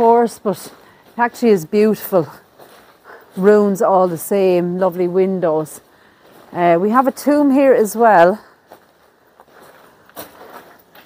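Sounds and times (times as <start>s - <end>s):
soft footsteps: 0.0s - 11.0s.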